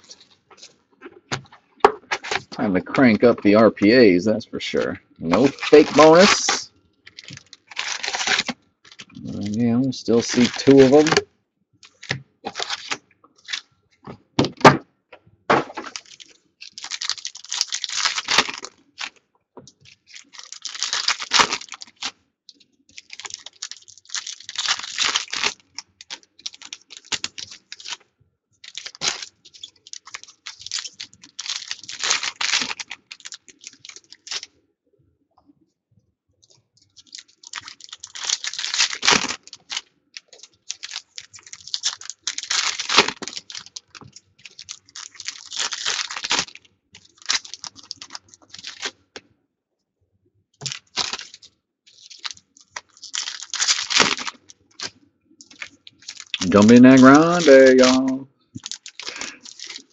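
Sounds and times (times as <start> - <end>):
foil wrappers tearing and crinkling: 0.0 - 1.5, 2.1 - 3.6, 5.2 - 11.2, 11.8 - 13.6, 15.7 - 19.2, 19.8 - 22.2, 22.9 - 28.0, 28.6 - 34.5, 36.9 - 49.0, 50.6 - 59.9
cards shuffling: 4.8 - 11.2, 52.1 - 59.9.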